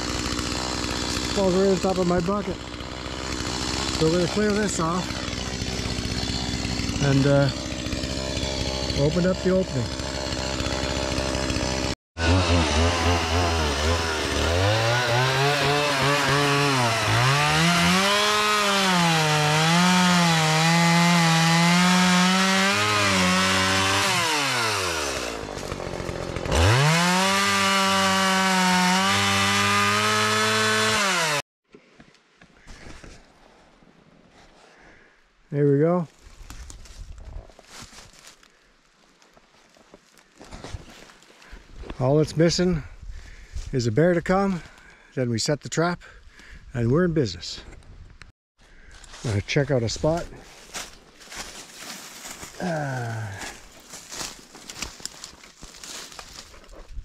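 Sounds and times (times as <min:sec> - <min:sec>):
chainsaw cutting wood: 0:00.0 - 0:31.4, 0:50.0 - 0:56.8.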